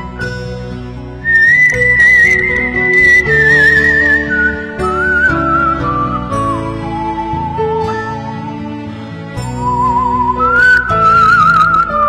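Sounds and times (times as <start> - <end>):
soft instrumental accompaniment: 0.0 - 12.0
whistled melody: 0.0 - 12.0.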